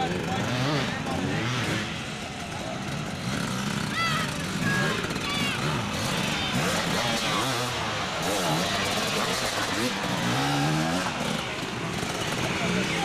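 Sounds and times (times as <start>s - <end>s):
dirt bike engines revving: 0.0s - 13.0s
spectators talking and shouting: 0.0s - 13.0s.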